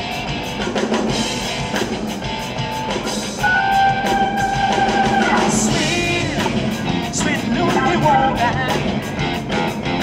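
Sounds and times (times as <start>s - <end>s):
drum kit: 0.0s - 10.0s
electric guitars: 0.0s - 10.0s
long held high guitar note: 3.4s - 5.8s.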